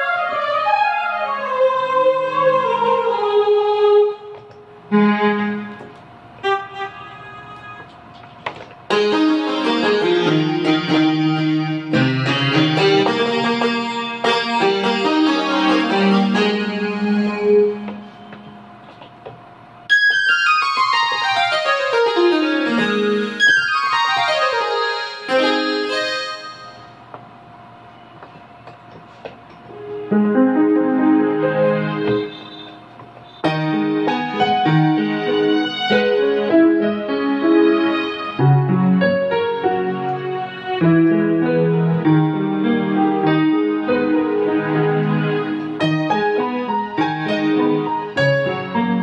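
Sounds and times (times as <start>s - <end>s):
keyboard note: 4.9s - 8.1s, 29.8s - 35.4s.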